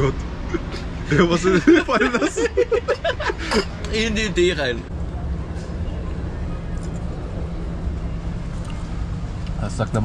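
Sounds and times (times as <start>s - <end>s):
city street traffic rumble: 0.0s - 10.0s.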